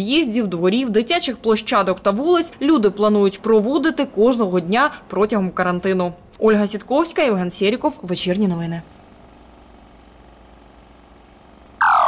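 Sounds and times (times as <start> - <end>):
faint engine hum: 0.0 - 12.0.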